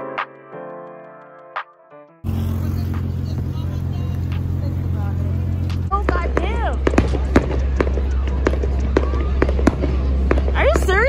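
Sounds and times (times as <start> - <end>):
fireworks bangs and cracks: 2.2 - 11.0
low rumble: 2.2 - 11.0.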